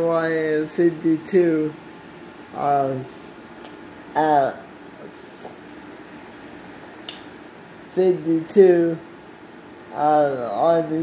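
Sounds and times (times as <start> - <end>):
faint hum: 0.0 - 11.0
low room hiss: 0.0 - 11.0.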